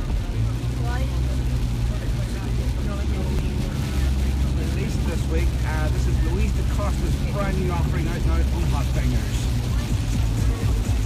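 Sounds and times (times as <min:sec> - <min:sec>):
faint voices: 0:00.0 - 0:11.0
vehicle engine and road rumble: 0:00.0 - 0:11.0.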